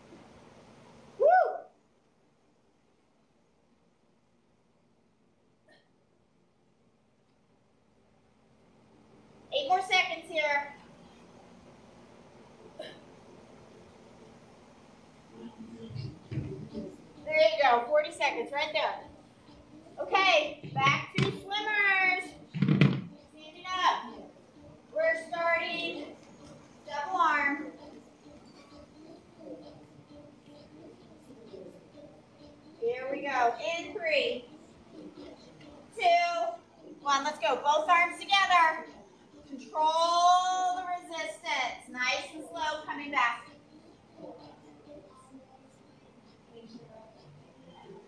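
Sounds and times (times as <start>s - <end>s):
faint room noise: 0.0s - 48.0s
woman cheering woo: 1.2s - 1.8s.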